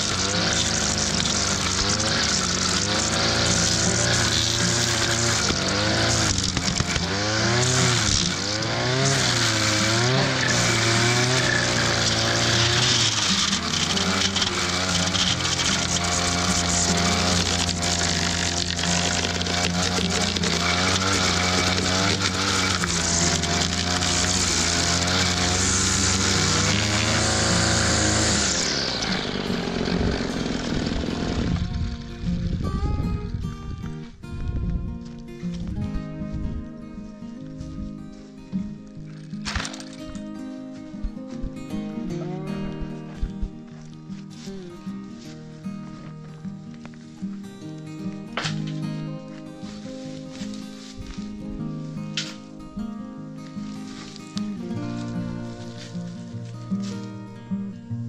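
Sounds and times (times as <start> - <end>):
small petrol engine running: 0.0 - 32.6.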